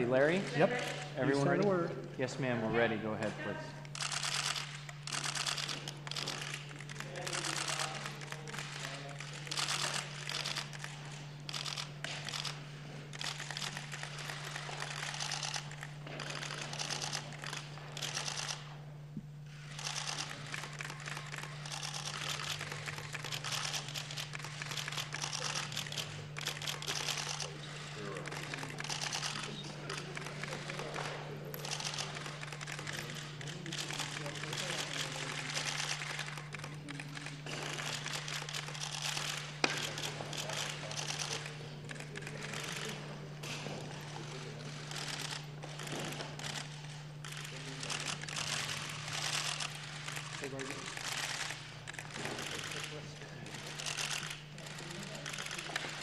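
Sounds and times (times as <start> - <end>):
steady low hum: 0.0 - 56.0
camera shutters clicking: 3.2 - 18.8, 19.5 - 56.0.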